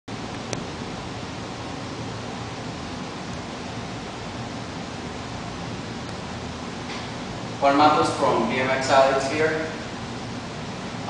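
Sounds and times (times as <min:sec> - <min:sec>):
recording hiss: 0:00.1 - 0:11.0.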